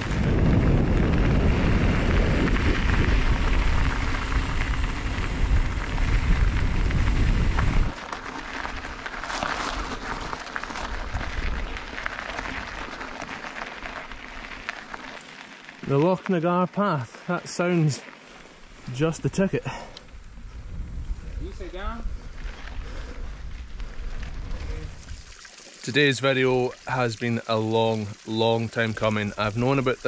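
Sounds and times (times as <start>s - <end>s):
wind on microphone: 0.0s - 8.0s, 20.1s - 25.3s
bike tyres on gravel: 0.0s - 30.0s.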